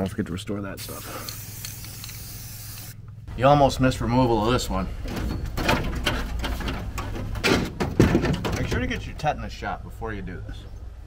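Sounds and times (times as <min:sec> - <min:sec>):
sheet metal crunching and tearing: 0:05.0 - 0:09.1.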